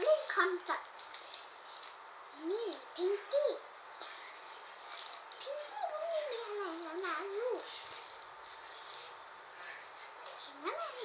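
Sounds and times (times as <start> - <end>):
faint rustling of dolls: 0.0 - 11.0.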